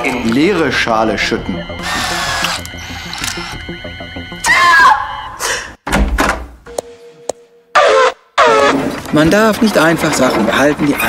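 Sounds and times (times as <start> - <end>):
cartoon music: 0.8 - 5.4
sharp clicks: 1.8 - 3.7
low thunk: 5.8 - 6.6.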